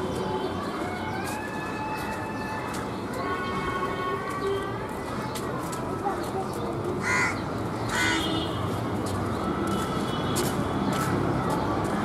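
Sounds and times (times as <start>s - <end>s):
crow cawing: 7.0s - 8.2s.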